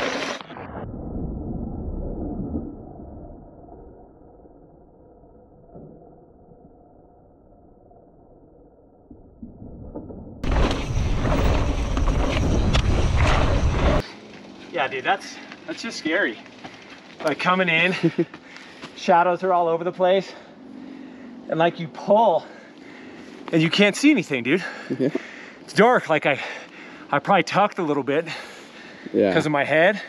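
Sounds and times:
bike tyres rolling on dirt trail: 0.0s - 0.5s, 10.4s - 20.9s
wind noise: 10.4s - 14.0s.

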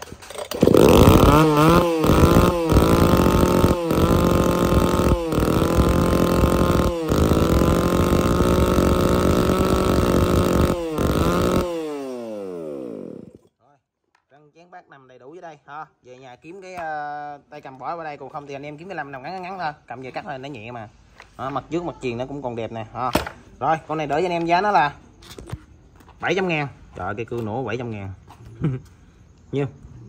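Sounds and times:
chainsaw running: 0.0s - 13.5s.

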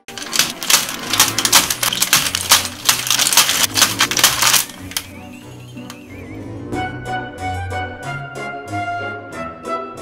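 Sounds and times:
foil bags crinkling: 0.0s - 5.1s.

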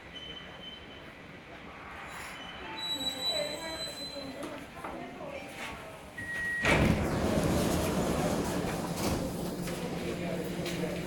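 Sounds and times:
rail car rushing noise: 0.1s - 4.4s, 6.8s - 11.0s
faint passenger voices: 2.7s - 11.0s.

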